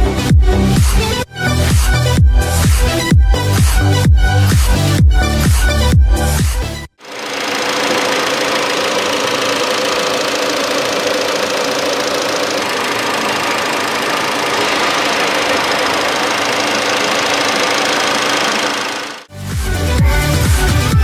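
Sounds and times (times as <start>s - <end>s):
car engine idling: 7.0s - 19.3s.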